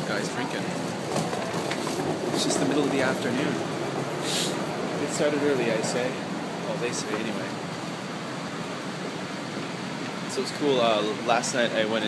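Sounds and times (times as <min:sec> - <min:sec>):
steady hiss: 0:02.4 - 0:12.0.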